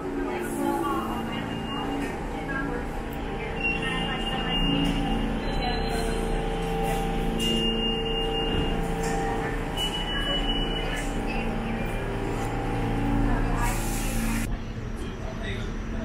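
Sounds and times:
subway train humming: 0:00.0 - 0:16.0.

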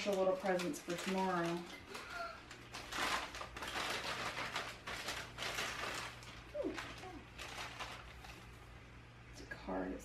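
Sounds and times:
wrapping paper tearing and crinkling: 0:00.0 - 0:08.7.

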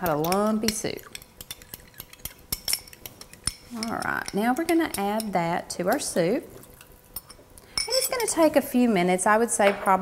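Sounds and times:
fork clinking against glass bowl: 0:00.0 - 0:05.4.

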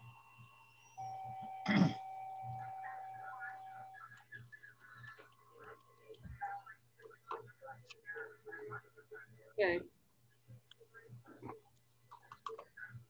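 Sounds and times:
steady high tone: 0:00.0 - 0:04.2
low electrical hum: 0:00.0 - 0:13.0
faint indistinct voices: 0:01.7 - 0:13.0.

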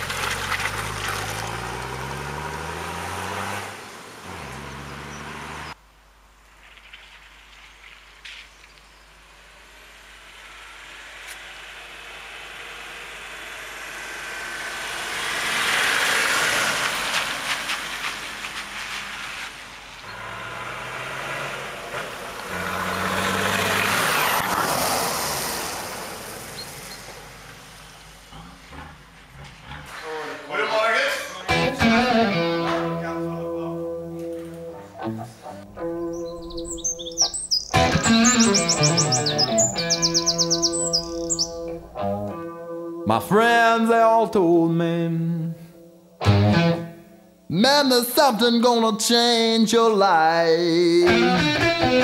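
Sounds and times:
off-road vehicle engine revving: 0:00.0 - 0:05.8, 0:09.5 - 0:18.1, 0:20.0 - 0:30.8, 0:31.4 - 0:42.4.

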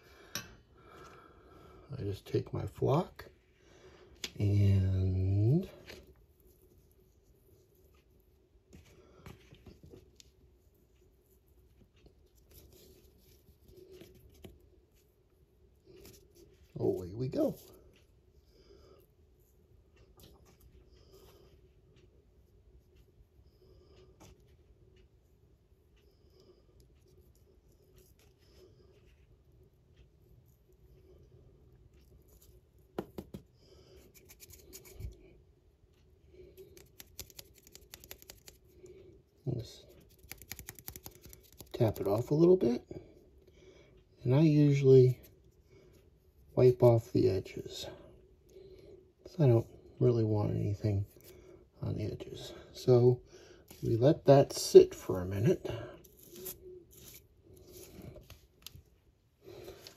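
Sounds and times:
low room hum: 0:00.0 - 0:59.9.

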